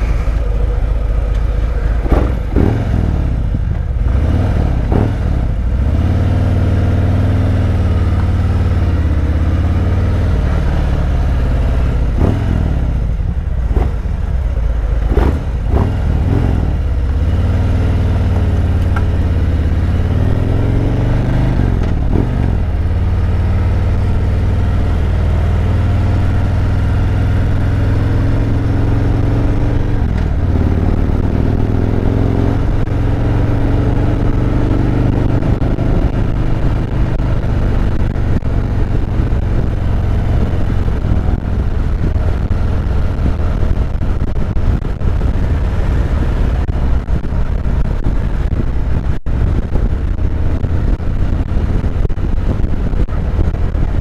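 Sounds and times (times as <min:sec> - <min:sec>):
motorcycle engine at low speed: 0:00.0 - 0:54.0.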